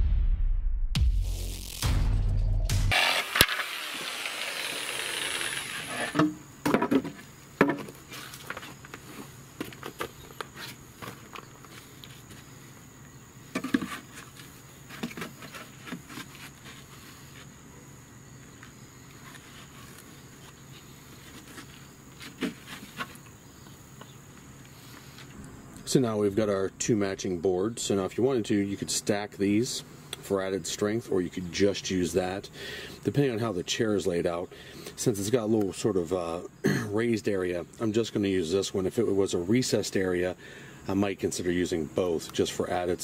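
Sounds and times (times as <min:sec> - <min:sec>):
plywood boards knocking: 0:06.1 - 0:07.9.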